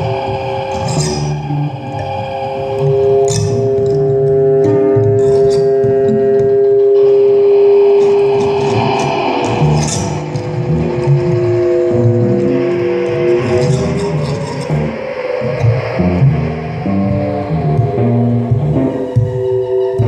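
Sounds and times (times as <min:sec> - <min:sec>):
long held tones: 0:00.0 - 0:20.0
choppy low figure: 0:03.7 - 0:19.4.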